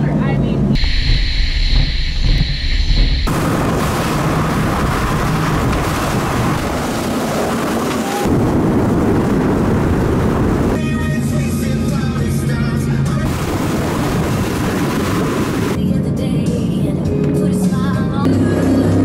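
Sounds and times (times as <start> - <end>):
powerboat engine rumble: 0.0 - 19.0
rush of wind and water: 0.8 - 11.0, 13.2 - 15.8.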